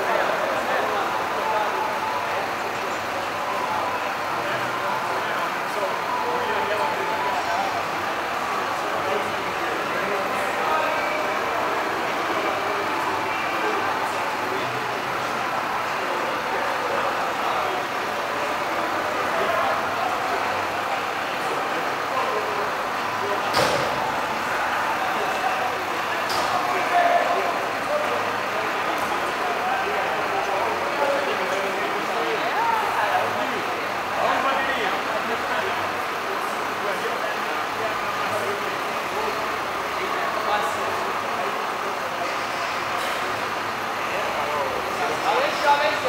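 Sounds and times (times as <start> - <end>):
chatter of many voices: 0.0 - 46.0.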